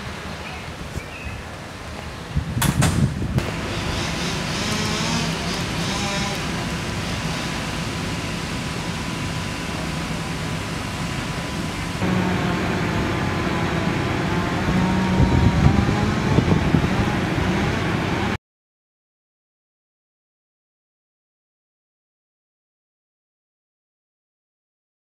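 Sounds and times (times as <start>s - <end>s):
low rumbles: 0.0s - 18.4s
machine engine humming: 3.2s - 18.4s.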